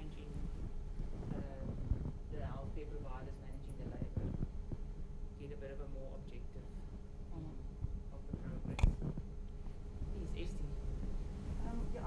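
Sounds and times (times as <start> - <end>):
faint off-microphone speech: 0.0 - 4.5, 5.4 - 9.2
soft low thumps: 0.0 - 12.0
steady low hum: 0.0 - 12.0.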